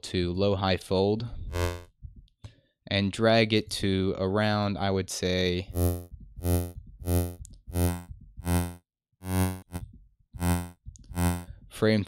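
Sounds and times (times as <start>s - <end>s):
buzzy synthesizer notes: 1.5s - 1.9s, 5.7s - 9.8s, 10.4s - 11.5s.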